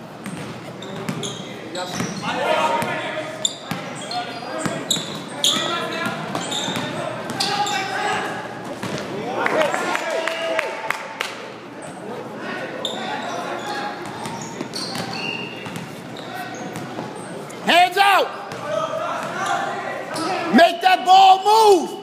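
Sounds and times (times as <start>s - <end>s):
loud shout: 9.2s - 11.1s, 17.7s - 22.0s.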